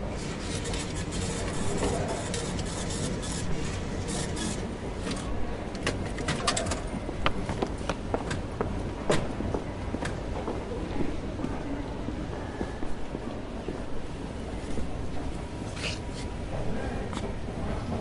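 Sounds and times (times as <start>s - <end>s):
low rumble of station: 4.6s - 18.0s.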